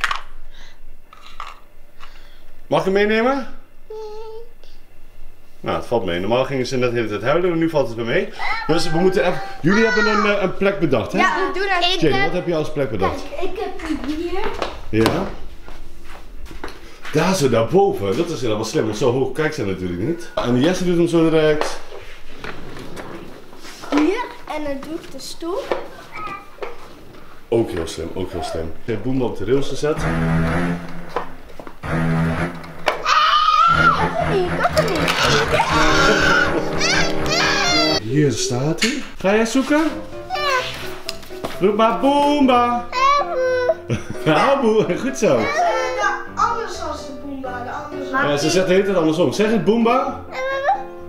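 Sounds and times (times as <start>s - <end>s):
shuffling and rustling: 21.6s - 28.0s, 39.5s - 41.8s.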